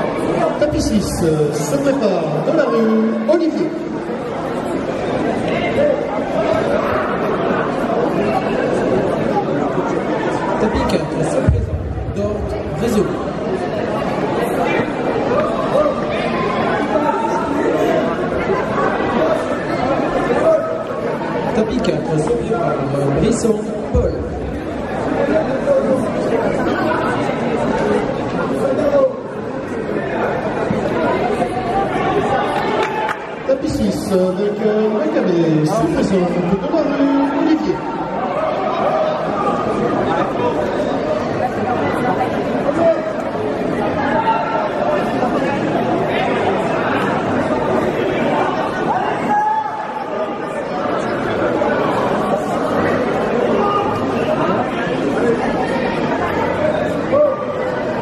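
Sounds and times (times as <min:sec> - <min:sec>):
crowd talking and calling out: 0:00.0 - 0:58.0
many voices chattering: 0:00.0 - 0:58.0.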